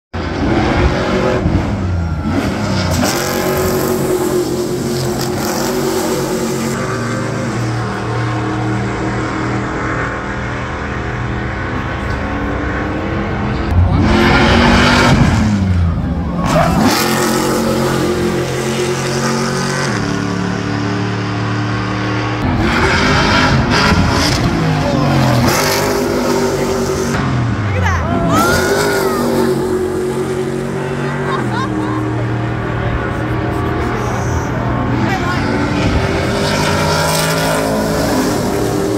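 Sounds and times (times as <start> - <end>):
race truck engines passing: 0.2 - 38.9.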